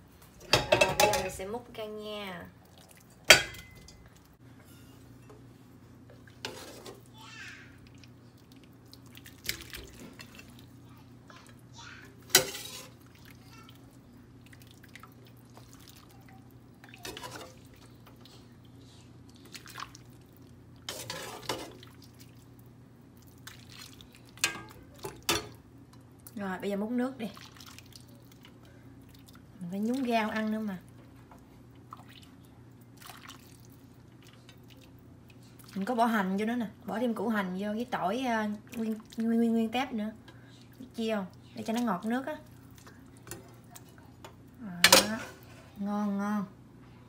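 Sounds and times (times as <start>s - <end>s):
metal ladle clinking on pots: 0.4s - 1.4s, 3.2s - 4.1s.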